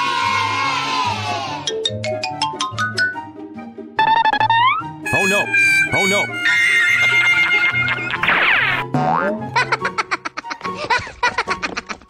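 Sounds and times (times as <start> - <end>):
cartoon falling pitch glides: 4.0 - 7.2
fast repeated short notes: 4.0 - 7.9.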